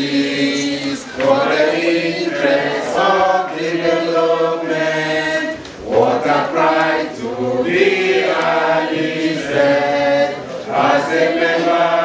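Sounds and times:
group singing a chant: 0:00.0 - 0:12.0.

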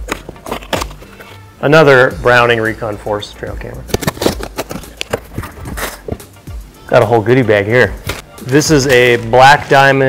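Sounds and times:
background music: 0:00.0 - 0:10.0
clicks and scraping rustles: 0:03.9 - 0:06.3.

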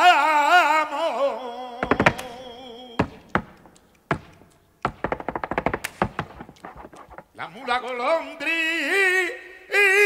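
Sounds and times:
dance shoes stamping on stage: 0:01.8 - 0:07.4.

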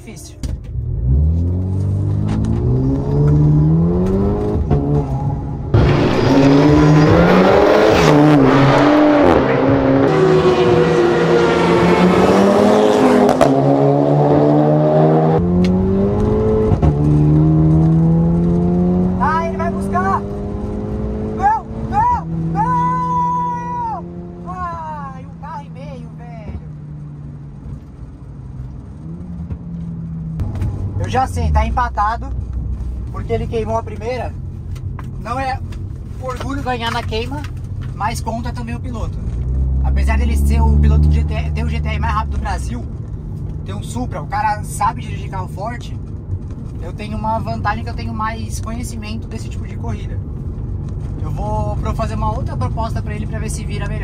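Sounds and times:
wind and road noise: 0:00.0 - 0:54.0
car engine accelerating: 0:00.5 - 0:54.0.

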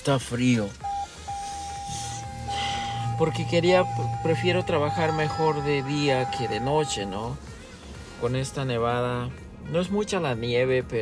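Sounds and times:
low hum: 0:00.8 - 0:07.2
high electronic tone: 0:00.8 - 0:07.4.

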